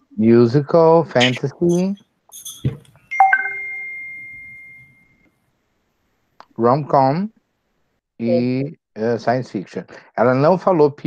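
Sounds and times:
bright two-note chime: 3.2 - 5.2.

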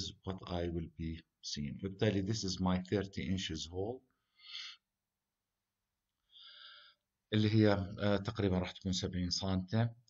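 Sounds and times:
faint breath: 4.1 - 4.9, 6.2 - 7.1.

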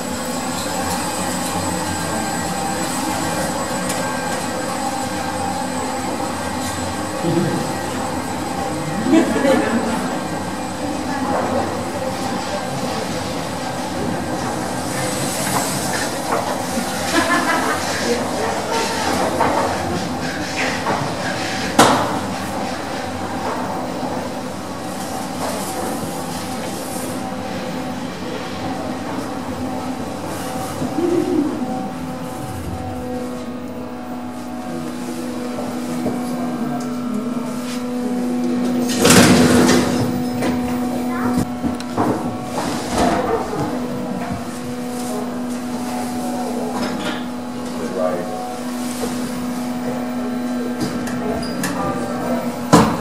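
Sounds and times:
motor hum: 0.0 - 22.2
lift mechanical rumble and rattle: 0.0 - 53.0.

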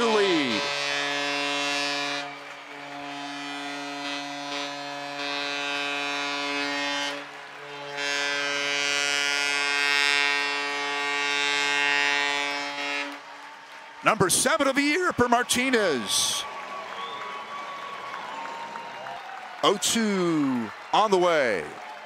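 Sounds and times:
deep horn blasts: 0.0 - 13.2
crowd cheering and clapping: 0.0 - 22.0.

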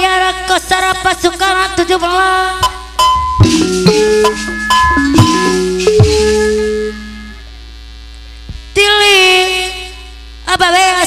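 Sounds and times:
gamelan ensemble playing: 3.0 - 7.3
ringing metal gong stroke: 3.1 - 7.4
low hum: 3.1 - 8.6.

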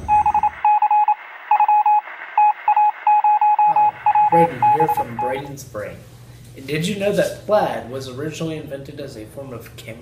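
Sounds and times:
electronic beeping: 0.0 - 5.5.

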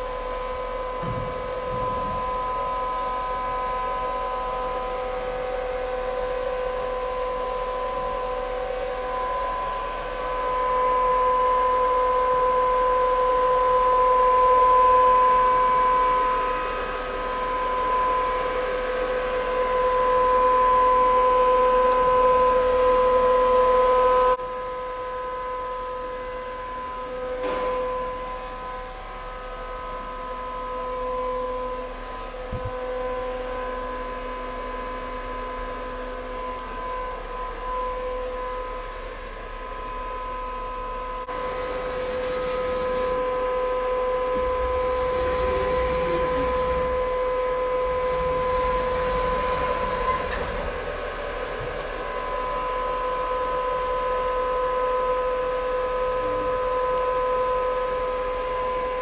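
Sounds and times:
machining center whine: 0.0 - 59.0.

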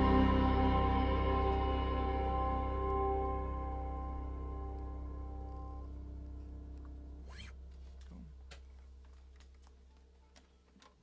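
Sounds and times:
bass and guitar note ringing: 0.0 - 8.4.

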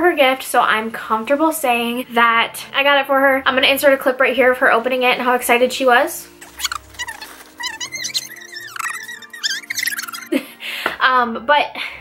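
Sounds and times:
music: 0.0 - 12.0
paper crinkling: 6.4 - 9.8
gift wrap tearing: 6.4 - 10.2
woman squealing excitedly: 6.5 - 10.4.

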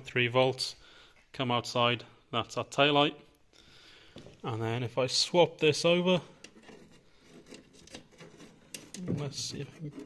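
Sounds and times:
test leads scraping on metal: 6.2 - 10.0.

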